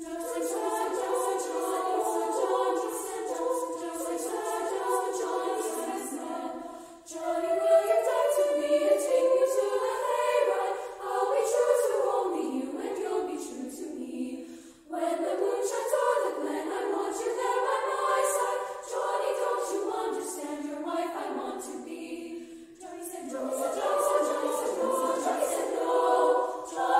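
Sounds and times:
women's choir singing: 0:00.0 - 0:26.9.

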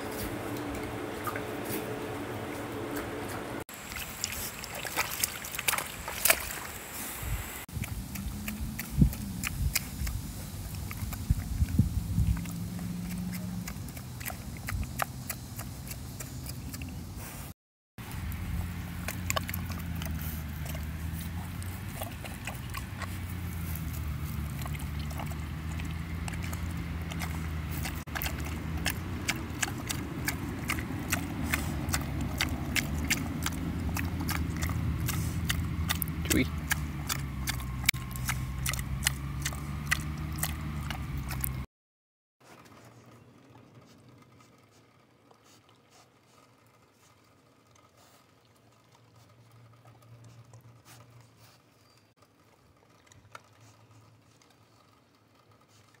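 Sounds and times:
pig crunching food: 0:00.0 - 0:07.1, 0:07.7 - 0:41.7, 0:42.4 - 0:56.0
steady low hum: 0:00.0 - 0:41.7.

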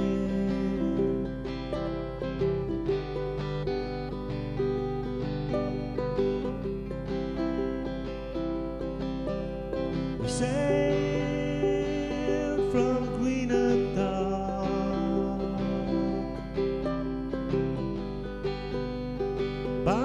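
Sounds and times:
acoustic guitar strumming: 0:00.0 - 0:20.0
held accompanying notes: 0:00.0 - 0:20.0
sliding higher tone: 0:00.0 - 0:20.0.

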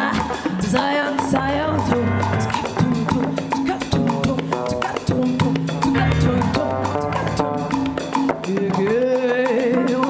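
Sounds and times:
bass: 0:00.0 - 0:04.4, 0:05.2 - 0:08.1
woman singing with vibrato: 0:00.0 - 0:10.0
piano accompaniment: 0:01.6 - 0:04.5, 0:05.8 - 0:08.5.

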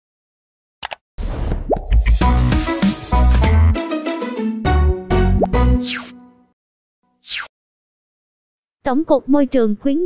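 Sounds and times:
intro music: 0:01.9 - 0:06.4
swelling effect with rising pop: 0:05.3 - 0:06.3.

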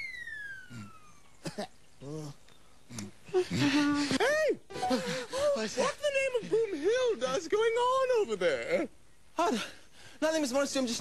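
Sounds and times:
falling whistle glide: 0:00.0 - 0:01.4.

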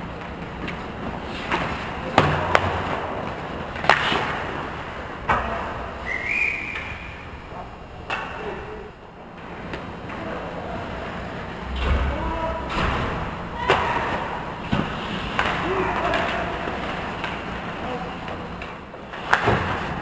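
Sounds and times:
hockey sticks and puck clacking: 0:00.0 - 0:05.5, 0:08.0 - 0:08.5, 0:09.4 - 0:10.2, 0:13.6 - 0:20.0
skates scraping ice: 0:00.2 - 0:04.8
players calling out: 0:10.0 - 0:17.0.

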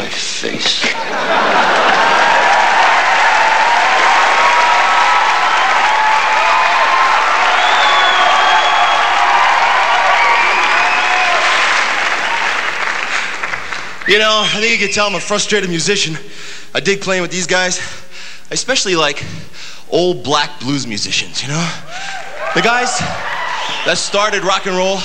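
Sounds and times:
audience applauding: 0:01.3 - 0:14.9, 0:21.9 - 0:24.5.

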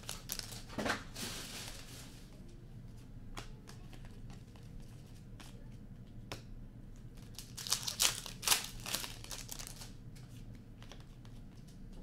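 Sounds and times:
foil pack tearing and crinkling: 0:00.0 - 0:01.9, 0:07.2 - 0:09.9.

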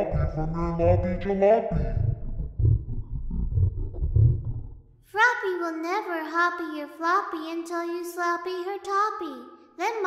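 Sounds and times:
deep growling roar: 0:00.0 - 0:04.8.

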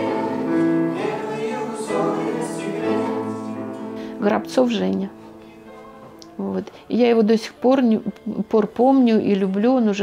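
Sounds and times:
acoustic guitar: 0:00.0 - 0:07.0
grand piano: 0:00.0 - 0:08.8.

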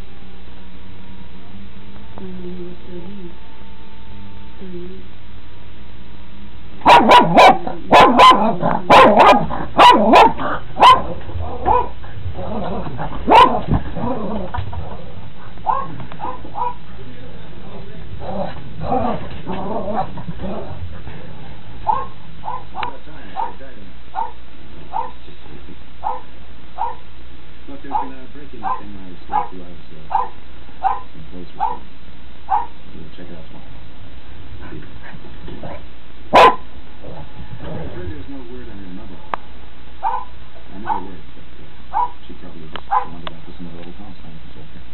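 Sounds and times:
low background hiss: 0:00.0 - 0:44.9
dog barking: 0:06.8 - 0:12.0, 0:13.2 - 0:13.7, 0:15.6 - 0:16.9, 0:21.8 - 0:25.2, 0:26.0 - 0:27.1, 0:27.9 - 0:31.9, 0:32.5 - 0:32.8, 0:36.3 - 0:36.7, 0:40.0 - 0:41.2, 0:41.9 - 0:42.2, 0:42.9 - 0:43.2.

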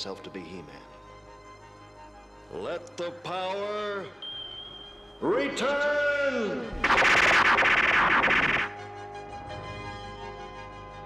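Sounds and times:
soft sustained music chords: 0:00.0 - 0:06.8
dense crackling magic burst: 0:06.8 - 0:08.7.

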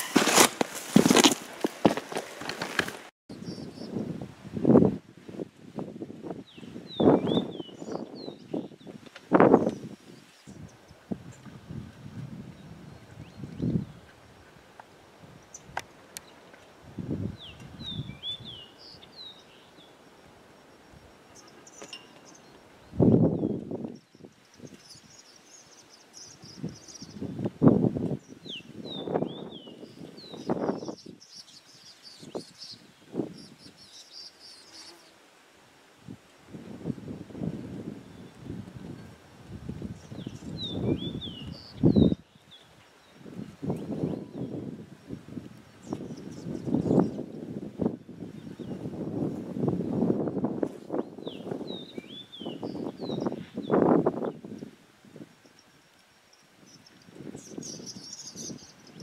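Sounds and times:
low rumbling wind gusts: 0:03.3 - 0:21.2, 0:22.5 - 0:31.2, 0:36.0 - 0:55.4
swallows chirping: 0:56.4 - 0:59.0.

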